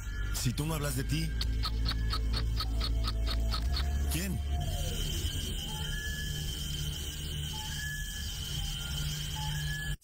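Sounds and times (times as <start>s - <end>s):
steady high tone: 3.8s - 10.0s.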